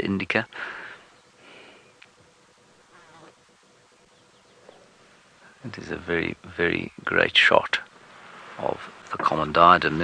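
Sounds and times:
quiet bush ambience: 0.0 - 10.0
flying insect buzzing: 1.4 - 5.3.

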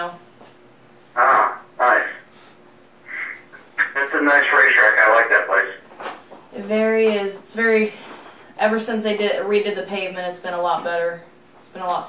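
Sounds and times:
person talking: 1.2 - 2.2, 3.1 - 5.8.

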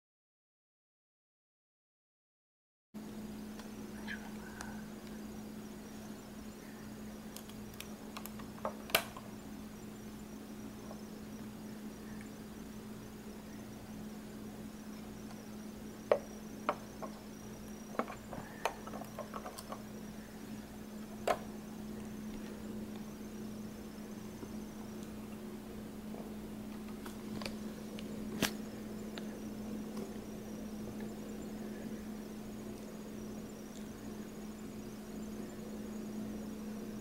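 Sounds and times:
steady low hum: 3.0 - 37.0.

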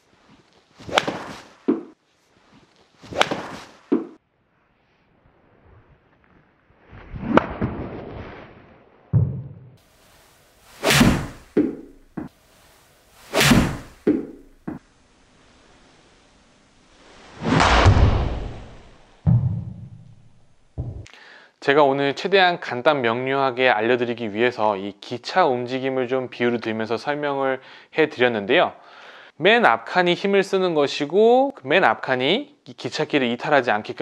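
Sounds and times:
golf club swishing: 0.2 - 4.2, 9.9 - 14.8
club cracking ball off mat: 0.9 - 2.0, 3.1 - 4.2, 10.8 - 12.3, 13.3 - 14.8
dull thud: 10.9 - 12.3, 13.4 - 14.8.

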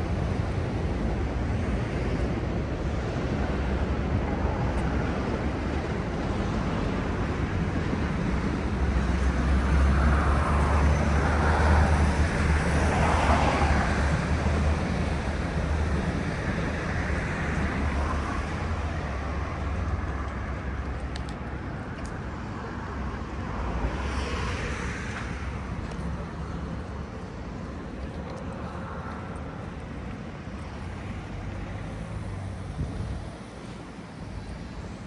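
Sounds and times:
steady traffic noise: 0.0 - 35.0.

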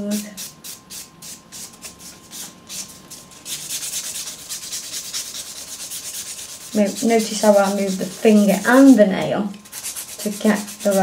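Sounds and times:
nail buffer rubbing on nail: 0.4 - 8.9, 9.6 - 11.0.

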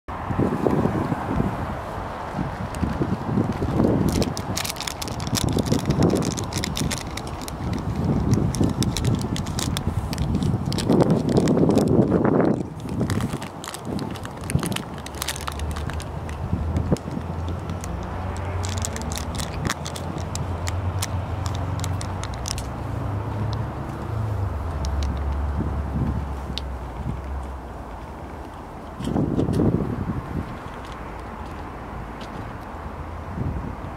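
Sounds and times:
wind buffeting microphone: 0.1 - 33.9
clicks and scuffs of walking: 2.3 - 29.8, 30.4 - 32.8.

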